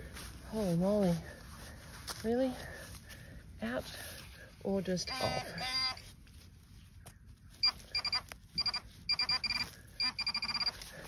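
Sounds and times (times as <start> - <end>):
pinpointer beeping rapidly: 7.6 - 10.7.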